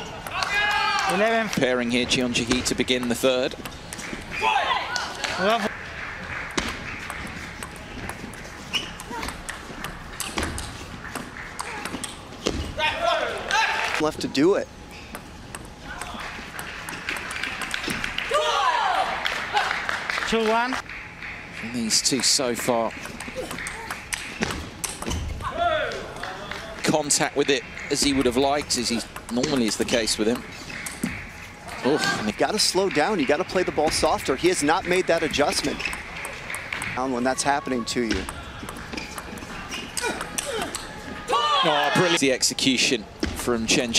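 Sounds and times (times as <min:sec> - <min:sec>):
table tennis ball clicking: 0:06.5 - 0:12.2, 0:15.0 - 0:18.3, 0:21.7 - 0:25.3, 0:26.5 - 0:31.4, 0:33.5 - 0:41.0.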